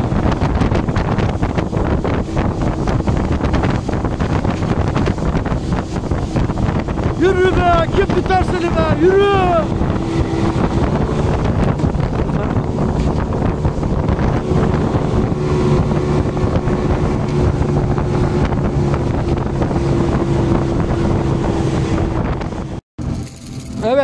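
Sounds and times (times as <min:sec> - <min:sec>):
boat wake rushing: 0:00.0 - 0:22.8
outboard motor droning: 0:00.0 - 0:22.8
wind buffeting microphone: 0:00.0 - 0:22.8.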